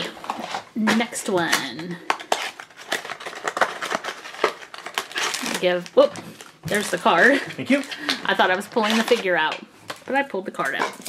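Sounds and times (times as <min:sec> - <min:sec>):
papery rustling: 0:02.2 - 0:09.4.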